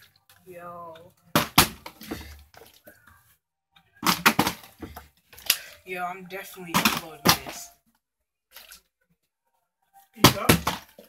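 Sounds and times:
plastic bottle thudding down: 1.3s - 2.4s, 4.0s - 5.1s, 6.7s - 7.7s, 10.2s - 11.0s.

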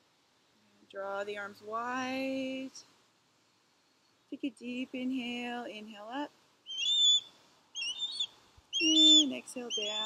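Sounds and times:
songbird chirping: 3.7s - 10.0s.

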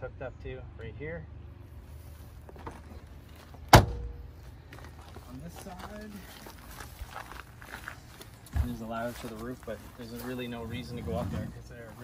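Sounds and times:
hatch shutting with a bang: 3.7s - 4.2s.

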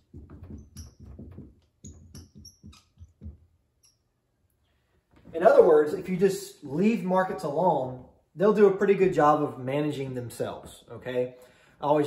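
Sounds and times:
marker squeaking on whiteboard: 0.0s - 4.2s.

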